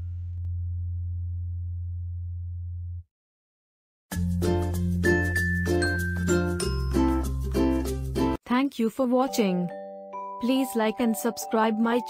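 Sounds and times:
low-pitched hum: 0:00.0 - 0:03.1.

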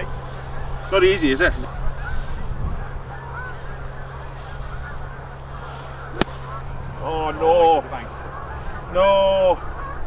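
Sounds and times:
faint calls: 0:00.0 - 0:10.0
golf club striking sand: 0:05.5 - 0:07.4.

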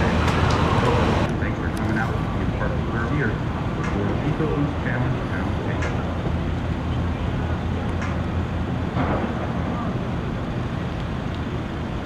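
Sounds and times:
faint voices: 0:00.0 - 0:08.3
car engines rumbling: 0:00.0 - 0:12.0.

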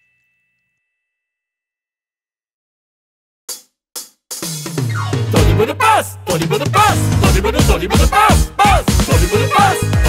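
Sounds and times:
ringing chime: 0:00.0 - 0:01.6.

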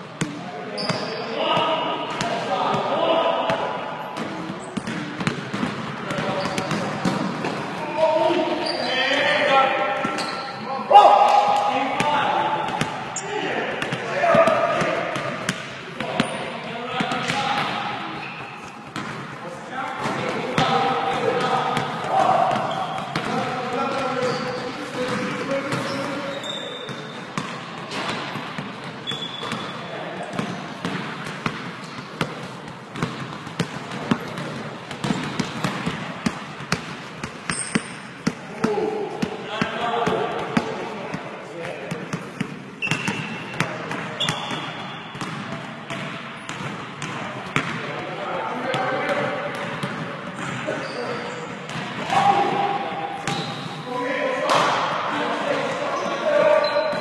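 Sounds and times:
players calling out: 0:19.4 - 0:27.2.

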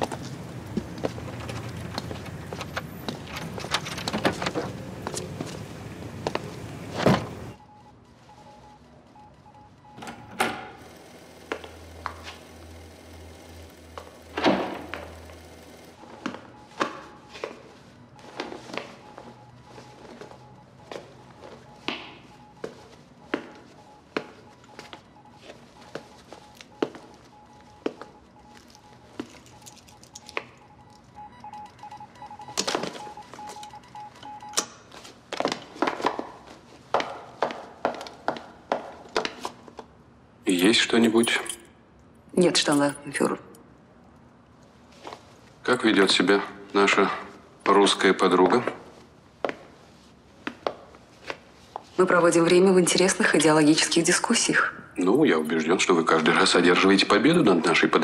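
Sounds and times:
footsteps on hard floor: 0:04.6 - 0:07.6, 0:16.1 - 0:28.2, 0:34.8 - 0:39.9.

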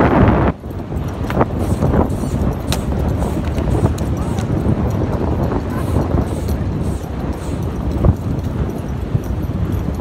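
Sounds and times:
horse hoofbeats on sand: 0:00.3 - 0:10.0.

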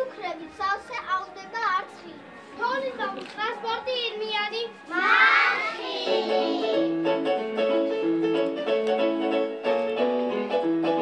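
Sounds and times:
young children speaking: 0:00.0 - 0:06.9
group of children shouting: 0:04.9 - 0:06.8.

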